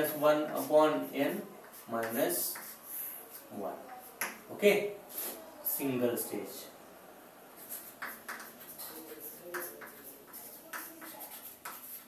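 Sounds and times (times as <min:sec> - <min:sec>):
chalk tap on blackboard: 0:01.6 - 0:02.8, 0:03.9 - 0:04.4, 0:07.8 - 0:12.0
man speaking: 0:04.5 - 0:05.0, 0:05.6 - 0:06.8.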